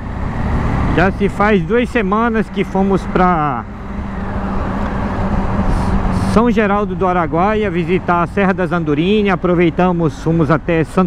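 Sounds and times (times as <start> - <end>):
motorcycle engine cruising: 0.0 - 11.0
road noise: 0.0 - 11.0.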